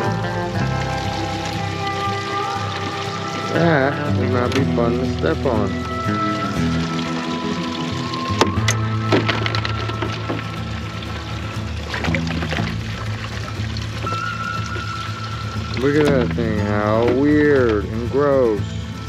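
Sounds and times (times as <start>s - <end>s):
background music with low notes: 0.0s - 19.0s.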